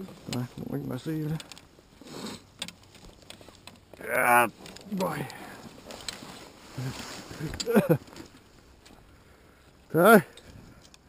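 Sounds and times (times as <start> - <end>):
soft rustle: 0.0 - 11.0
metallic clicks of harness buckles: 1.4 - 4.0, 4.6 - 6.5, 10.3 - 11.0.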